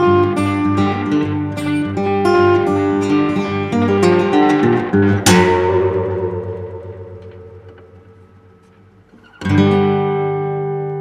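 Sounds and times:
strummed guitar chord: 0:00.0 - 0:08.7.

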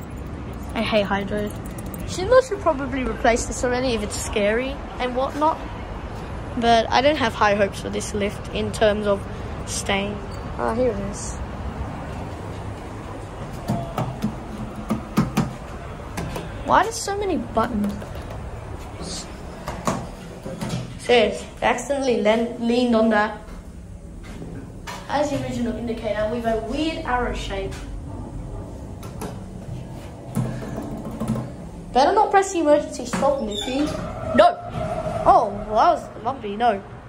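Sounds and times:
low steady hum: 0:00.0 - 0:19.6.

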